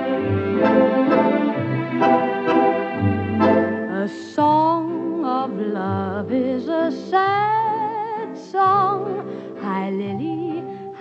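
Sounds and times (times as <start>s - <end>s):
organ-like waltz chords: 0.0s - 11.0s.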